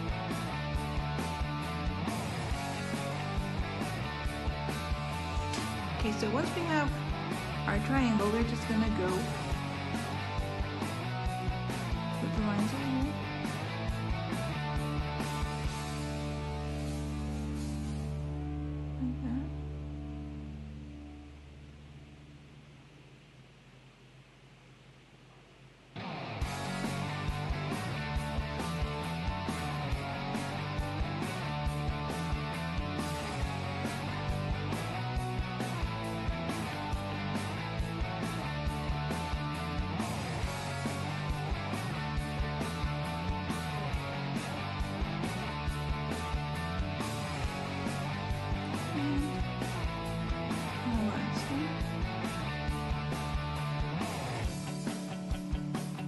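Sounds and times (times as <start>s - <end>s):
music with steady beat: 0.0s - 18.4s, 26.0s - 56.0s.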